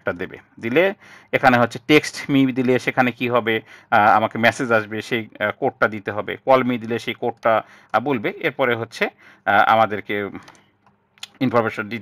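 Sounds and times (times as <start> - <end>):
man speaking: 0.0 - 10.6, 11.2 - 12.0
computer keyboard key clicks: 10.4 - 11.3.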